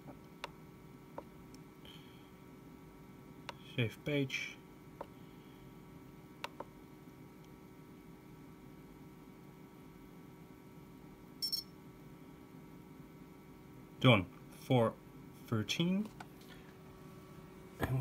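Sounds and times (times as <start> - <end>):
faint steady hum: 0.0 - 18.0
short high beep: 11.4 - 11.7.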